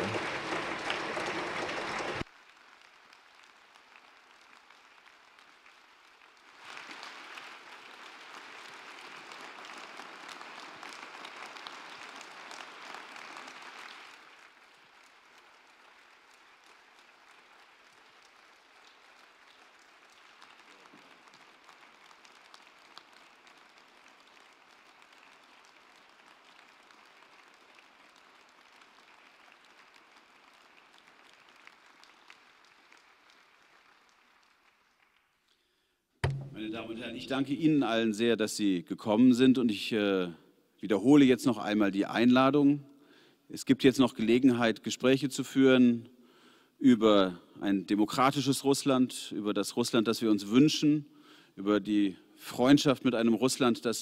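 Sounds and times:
audience applauding: 0.0 - 35.6.

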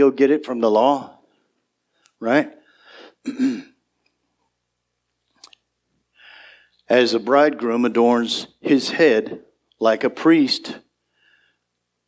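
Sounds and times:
man clearing throat: 3.2 - 3.8.

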